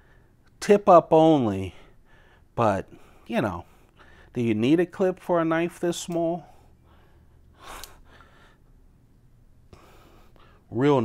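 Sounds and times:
short breath: 6.5s - 8.7s.

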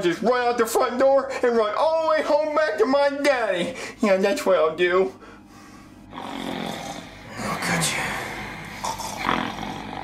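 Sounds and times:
man snoring loudly: 6.1s - 7.5s, 8.1s - 10.0s.

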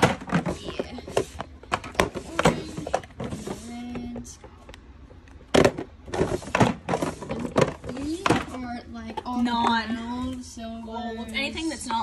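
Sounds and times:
plastic drawer sliding on runners: 6.1s - 8.5s.

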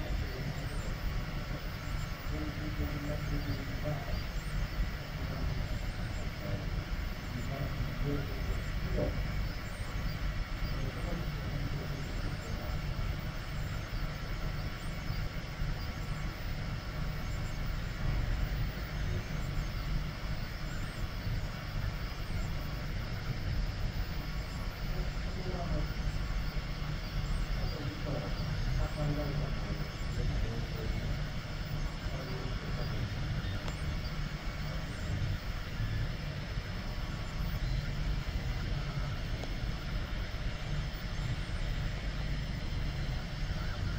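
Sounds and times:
blower fan whine: 0.0s - 43.9s
faint motor tones: 0.0s - 43.9s
printer low hum: 0.0s - 43.9s.

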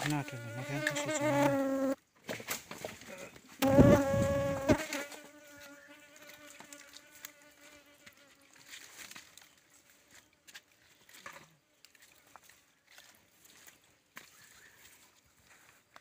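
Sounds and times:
insect buzzing: 0.0s - 2.0s, 3.6s - 8.7s.

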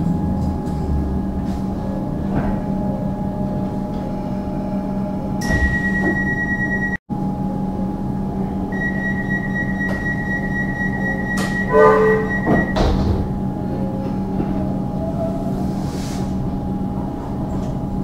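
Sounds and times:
train low hum: 0.0s - 18.0s
thin high whine: 8.7s - 12.8s
short run of pitched tones: 8.8s - 12.8s.

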